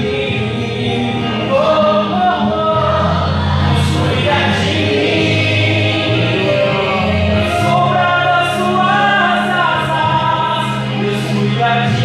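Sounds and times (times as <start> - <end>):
instrumental accompaniment: 0.0 - 12.0
man singing into microphone: 0.0 - 12.0
steady bass line: 0.0 - 12.0.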